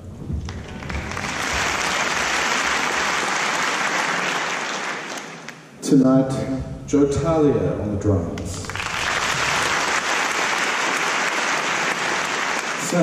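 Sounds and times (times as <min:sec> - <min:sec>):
audience applause: 0:00.0 - 0:05.7, 0:08.6 - 0:13.0.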